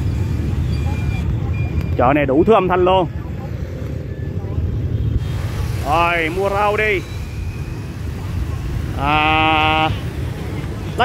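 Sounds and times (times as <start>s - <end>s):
motorbike traffic rumble: 0.0s - 11.0s.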